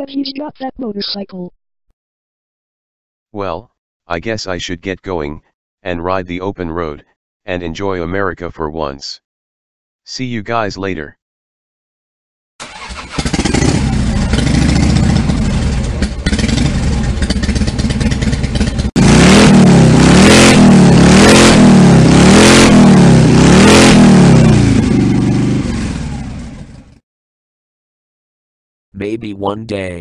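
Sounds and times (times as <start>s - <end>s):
motorcycle engine revving: 12.6s - 27.0s.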